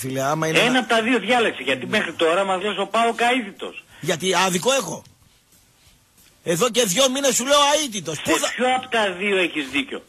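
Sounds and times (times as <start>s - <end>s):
person talking: 0.0s - 5.1s.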